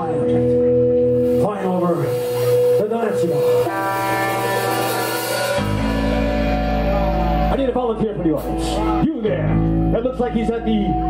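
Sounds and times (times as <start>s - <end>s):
electric guitar chord ringing: 0.0s - 11.0s.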